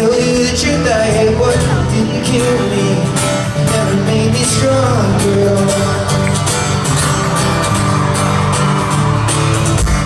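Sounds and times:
person singing pop song: 0:00.0 - 0:07.1
amplified acoustic guitar strumming: 0:00.0 - 0:10.0.

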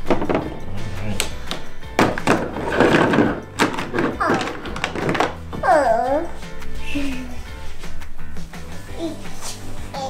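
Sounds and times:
plastic toys knocking together: 0:00.0 - 0:00.6, 0:01.2 - 0:05.6.

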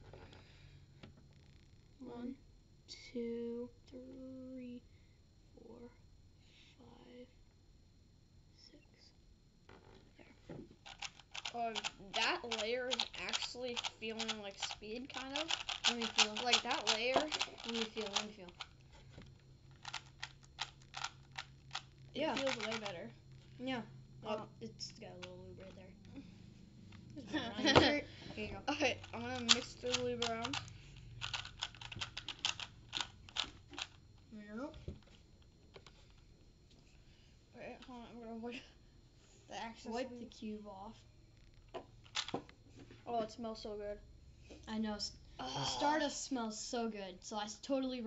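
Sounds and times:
plastic puzzle cube clicking: 0:10.9 - 0:18.7, 0:19.7 - 0:23.0, 0:29.1 - 0:34.0.

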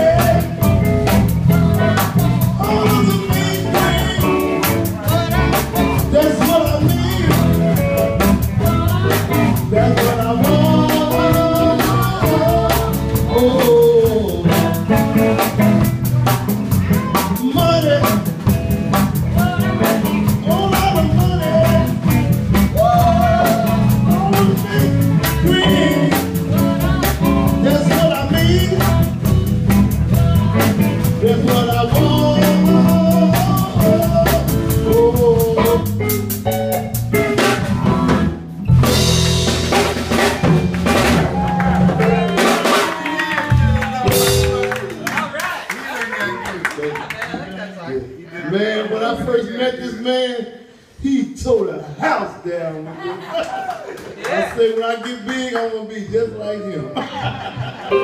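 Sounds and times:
electric guitar lead: 0:00.0 - 0:45.0
drum kit beat: 0:00.0 - 0:45.3.

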